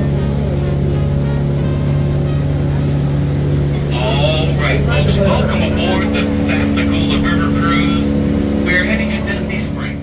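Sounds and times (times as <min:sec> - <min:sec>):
boat engine droning: 0:00.0 - 0:10.0
people talking: 0:03.8 - 0:10.0.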